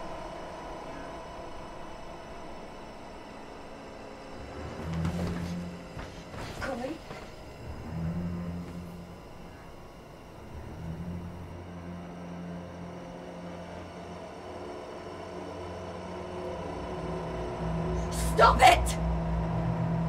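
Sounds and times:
low dark sustained drone: 0.0 - 20.0.

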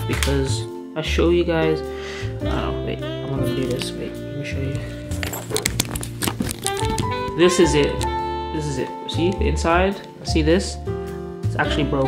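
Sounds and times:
guitar music: 3.1 - 10.2.

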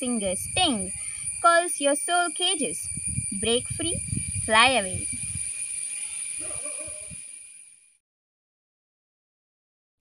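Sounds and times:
high-pitched insect drone: 0.0 - 8.0
low rumble: 2.8 - 5.5.

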